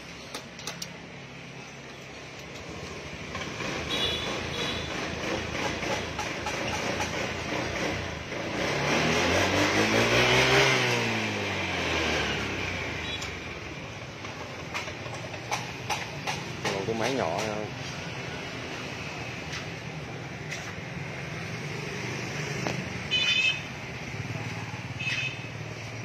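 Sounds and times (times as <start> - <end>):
traffic noise: 0.0 - 26.0
vehicle engine revving: 3.2 - 13.1.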